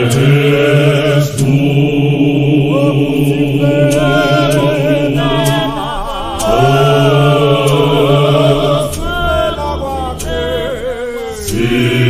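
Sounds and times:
choir singing a hymn: 0.0 - 12.0.

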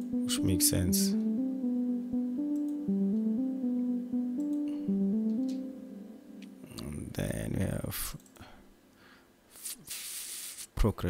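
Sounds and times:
plucked synth arpeggio: 0.0 - 6.8.

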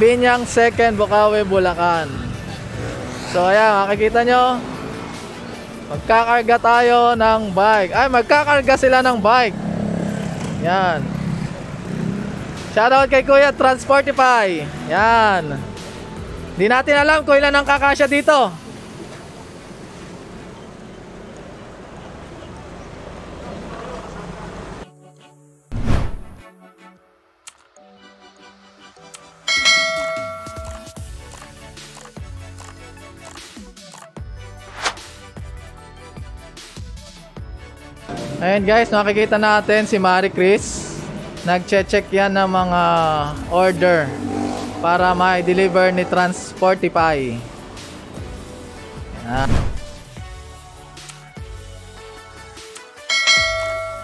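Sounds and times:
background music: 0.0 - 20.0, 24.3 - 54.0
loud bell-like chime: 29.5 - 31.0, 53.1 - 54.0.

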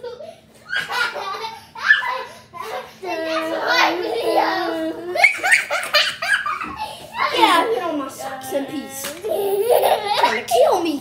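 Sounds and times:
child laughing: 0.0 - 8.1, 9.2 - 10.7.

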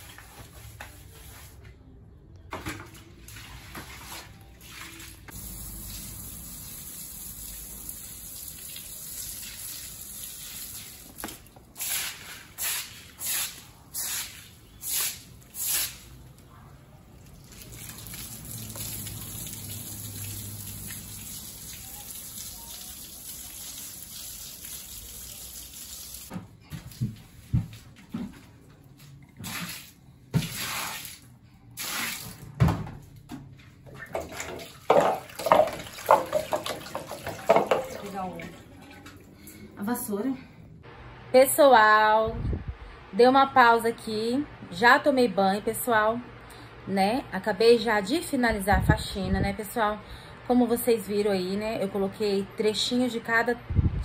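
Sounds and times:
hose water spraying on concrete: 3.2 - 16.2, 17.4 - 26.3, 29.4 - 32.4
sharp knocks and clatters: 34.2 - 38.0.

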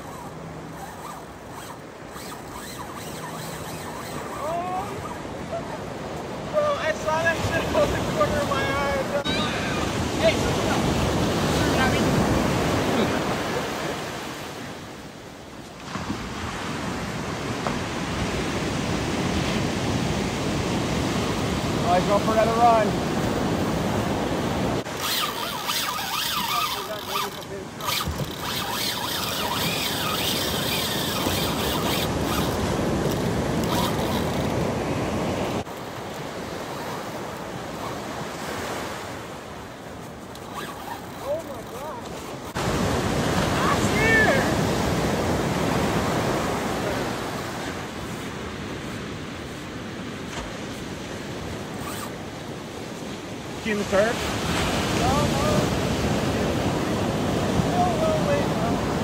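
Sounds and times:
surf breaking on beach: 15.8 - 28.2, 41.3 - 51.7, 52.6 - 59.0
wind on microphone: 16.0 - 35.7.

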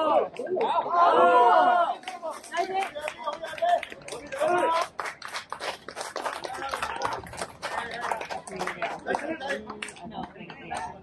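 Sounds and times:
people calling out and chattering: 0.0 - 5.0, 6.2 - 11.0.

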